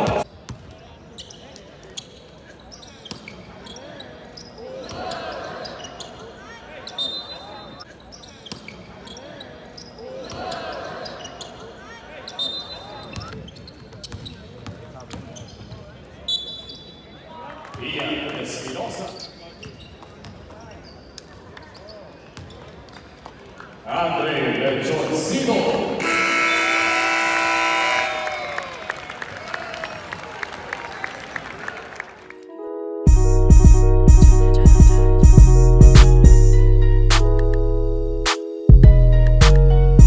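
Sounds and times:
sneakers squeaking: 0.0s - 17.9s, 19.0s - 23.8s
faint squeaks: 15.3s - 17.2s, 19.1s - 23.2s
multi-tone buzzer blast: 26.0s - 28.1s.

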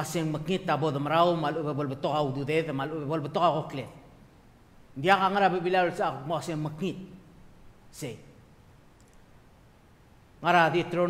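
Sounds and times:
faint clicks: 9.0s - 9.3s.

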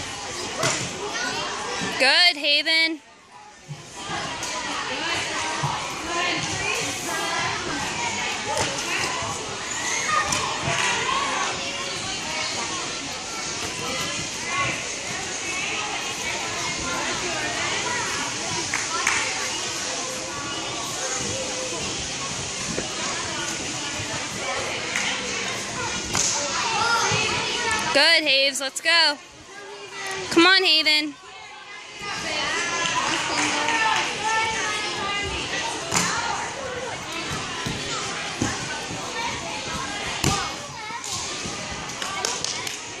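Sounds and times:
indistinct chatter: 0.0s - 43.0s.

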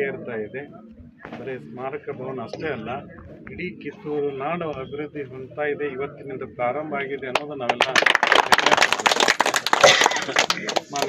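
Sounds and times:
people clapping: 7.3s - 11.0s.

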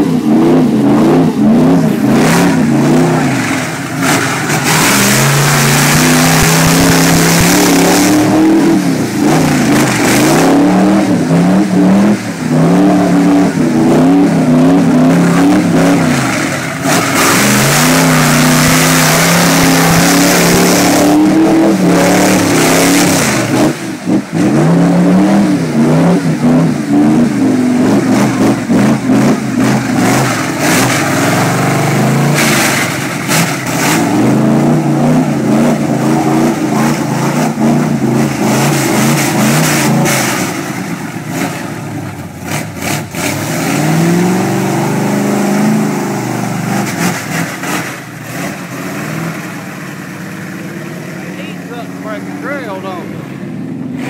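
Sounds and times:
truck engine revving: 0.0s - 54.0s
tyres churning through mud: 0.0s - 54.0s
mud and water spraying: 0.1s - 53.0s.

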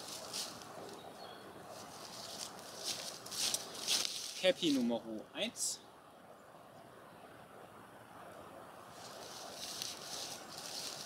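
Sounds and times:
footsteps crunching dry leaves: 0.0s - 1.0s, 1.7s - 5.0s, 8.9s - 11.0s.

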